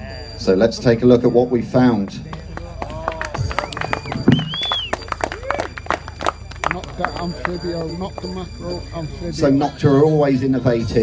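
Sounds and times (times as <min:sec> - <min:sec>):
music over public-address system: 0:00.0 - 0:11.0
voices: 0:00.0 - 0:11.0.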